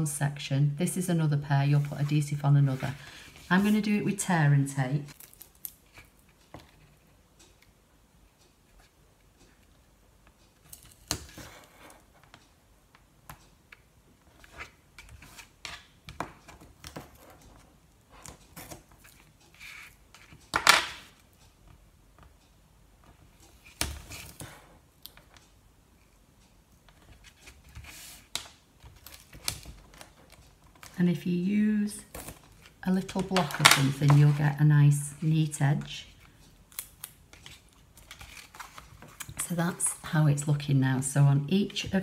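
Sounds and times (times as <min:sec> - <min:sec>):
tape crackling and tapping: 0:08.4 - 0:25.6, 0:26.4 - 0:31.0, 0:32.0 - 0:40.1.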